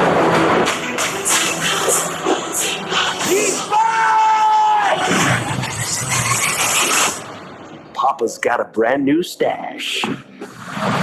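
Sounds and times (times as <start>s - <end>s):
trailer music: 0.0s - 3.7s
man shouting: 3.2s - 5.1s
rushing sound effects: 4.8s - 7.7s.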